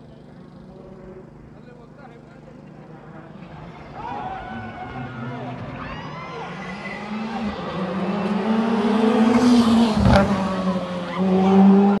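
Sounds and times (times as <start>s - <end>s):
rally car engine at high revs: 6.3s - 12.0s.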